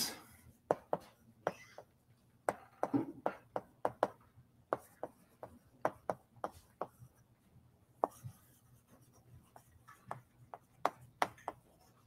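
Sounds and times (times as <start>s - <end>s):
chalk tapping and scratching: 0.6s - 1.9s, 2.5s - 7.2s, 8.0s - 12.0s.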